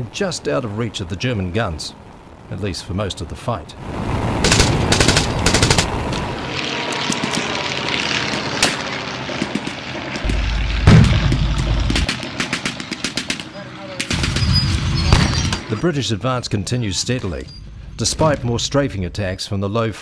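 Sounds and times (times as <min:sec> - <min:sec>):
aircraft engine drone: 0:00.0 - 0:19.6
machine-gun bursts: 0:04.4 - 0:06.0
heavy boom: 0:10.2 - 0:12.4.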